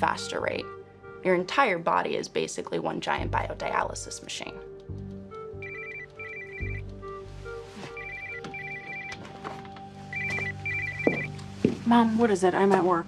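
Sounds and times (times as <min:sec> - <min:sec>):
soft background music: 0:00.0 - 0:13.0
phone ringing with electronic trill: 0:05.6 - 0:06.8, 0:07.9 - 0:09.3, 0:10.1 - 0:11.3.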